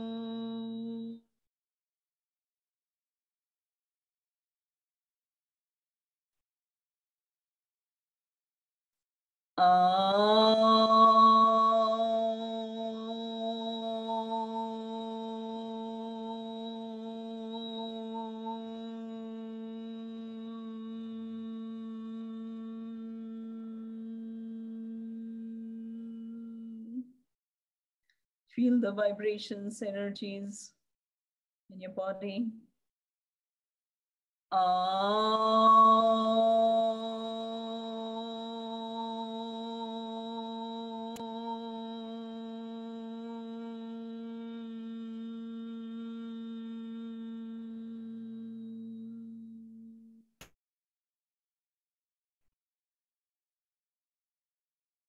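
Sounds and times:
woman humming low chant: 0:00.0 - 0:01.2, 0:09.6 - 0:27.0, 0:34.6 - 0:50.2.

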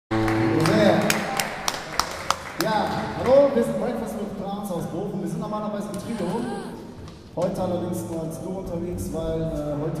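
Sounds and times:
man speaking into a microphone: 0:02.6 - 0:06.7, 0:07.3 - 0:10.0.

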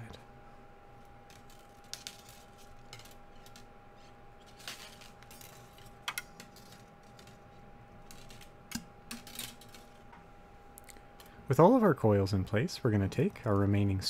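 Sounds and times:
wire scraping rustles: 0:01.2 - 0:10.2.

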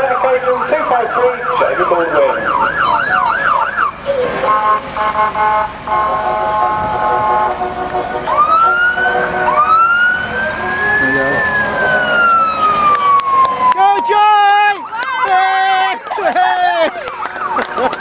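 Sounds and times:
electronic wail siren: 0:00.0 - 0:04.1, 0:08.2 - 0:14.0.

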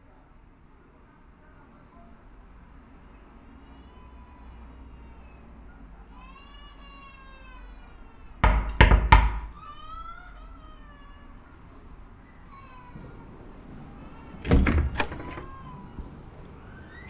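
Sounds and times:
knocks on a door: 0:08.4 - 0:09.5.

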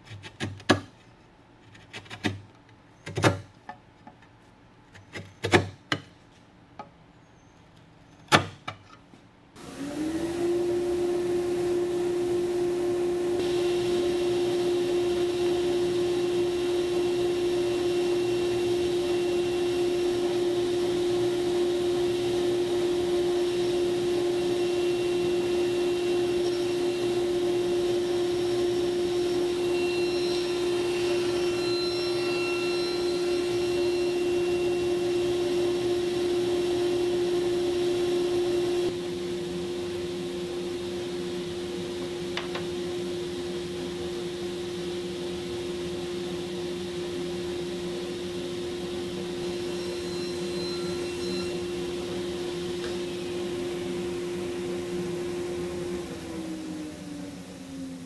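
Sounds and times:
table saw running: 0:09.6 - 0:57.3.

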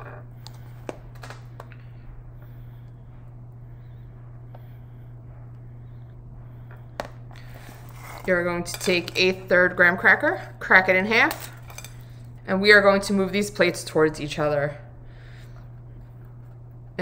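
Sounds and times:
steady low hum: 0:00.0 - 0:17.0
spoon scraping plate: 0:07.6 - 0:09.2.

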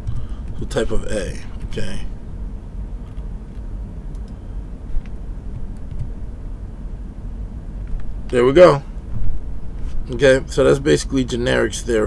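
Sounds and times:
low background rumble: 0:00.0 - 0:12.0
computer keys typing: 0:04.1 - 0:04.4, 0:05.0 - 0:06.1.

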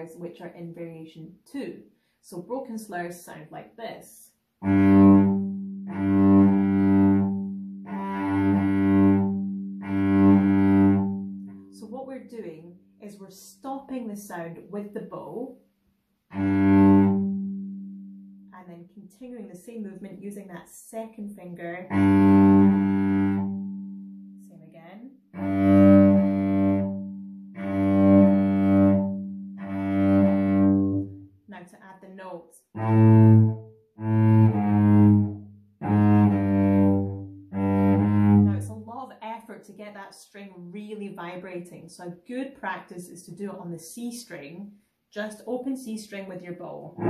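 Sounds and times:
cello bowed notes: 0:04.6 - 0:11.9, 0:16.3 - 0:18.5, 0:21.8 - 0:24.5, 0:25.3 - 0:31.4, 0:32.7 - 0:38.9.

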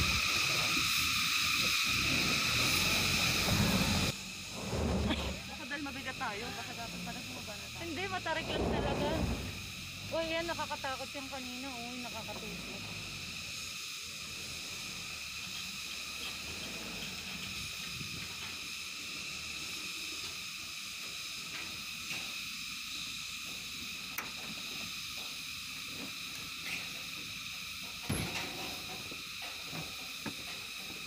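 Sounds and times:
high-pitched insect drone: 0:00.0 - 0:31.0
low uneven rumble: 0:02.1 - 0:13.6.

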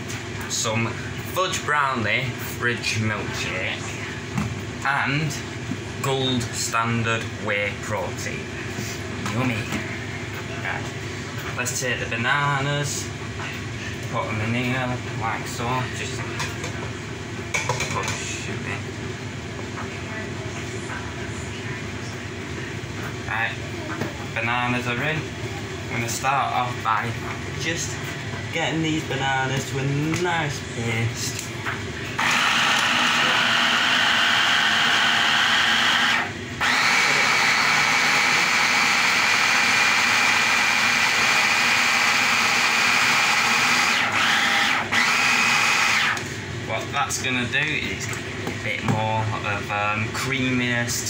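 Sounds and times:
hand blender motor running: 0:32.2 - 0:46.2.

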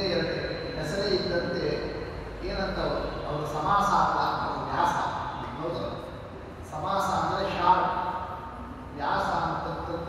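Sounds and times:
man speaking into a microphone: 0:00.0 - 0:08.3, 0:08.9 - 0:10.0.

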